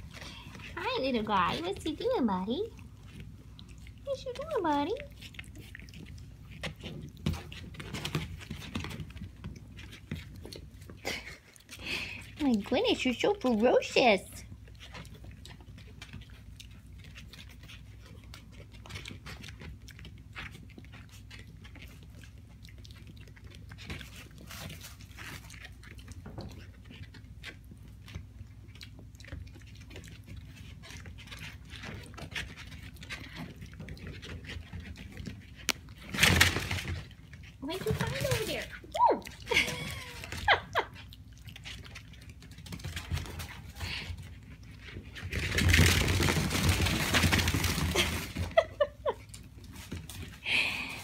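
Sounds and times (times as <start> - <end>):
hooves pattering on wood floor: 0.0 - 50.8
piglet chewing cloth: 0.0 - 51.0.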